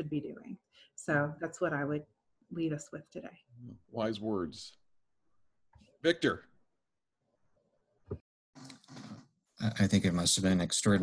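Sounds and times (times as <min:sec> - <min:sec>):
man speaking: 0:03.6 - 0:04.8, 0:06.0 - 0:06.5, 0:09.6 - 0:11.0.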